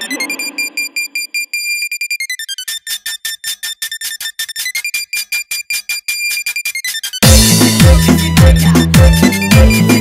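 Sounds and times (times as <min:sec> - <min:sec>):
stuttering synth beep: 0:00.0 - 0:07.2.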